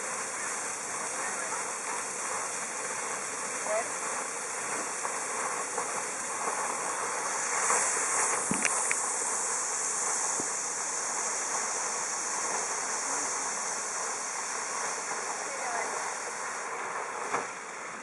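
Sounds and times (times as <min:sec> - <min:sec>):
geyser water jet rushing: 0:00.0 - 0:18.0.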